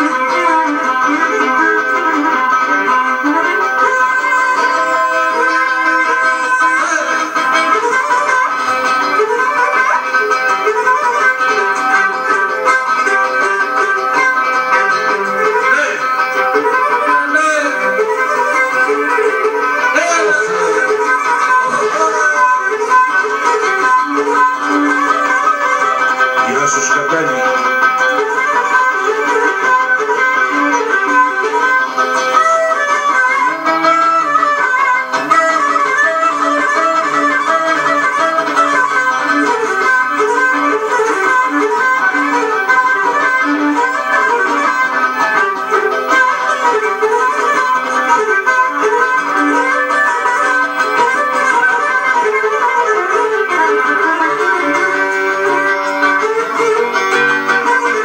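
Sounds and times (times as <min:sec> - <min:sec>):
bowed string melody: 0:00.0 - 0:58.0
plucked lute rhythm: 0:00.0 - 0:58.0.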